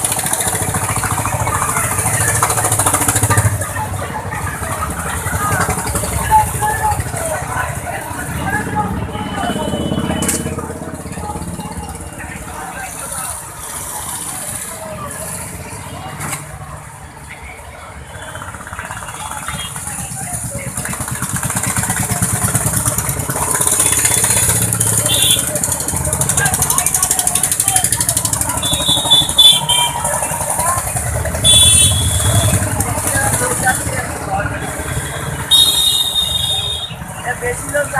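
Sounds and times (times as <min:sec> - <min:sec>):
highway traffic engines passing: 0:00.0 - 0:37.9
people's voices: 0:00.0 - 0:37.9
short high-pitched honks: 0:28.6 - 0:30.0, 0:31.4 - 0:32.6, 0:35.5 - 0:37.0.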